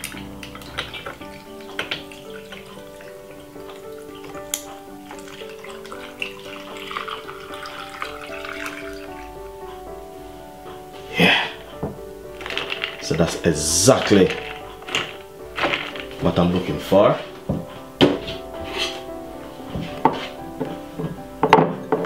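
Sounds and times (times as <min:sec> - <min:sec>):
juice pouring into glass: 0:00.0 - 0:09.4
ice clinking: 0:00.0 - 0:09.8, 0:11.2 - 0:16.8
background music: 0:00.0 - 0:22.0.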